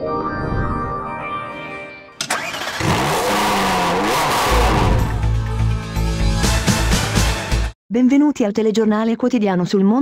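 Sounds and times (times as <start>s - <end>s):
soft synth music: 0.0s - 2.2s
car engine revving: 2.3s - 5.5s
bass-heavy music beat: 4.6s - 7.7s.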